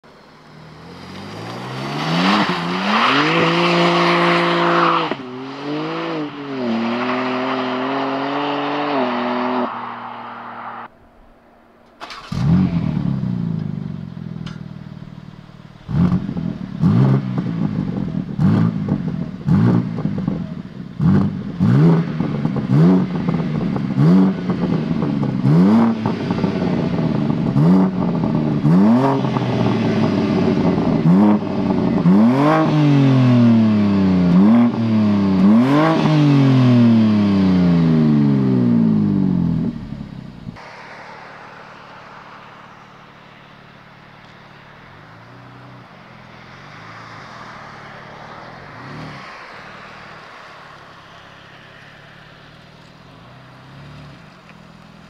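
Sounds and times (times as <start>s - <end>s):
car engine starting: 0.0s - 55.0s
car accelerating past: 0.6s - 11.0s, 40.5s - 54.4s.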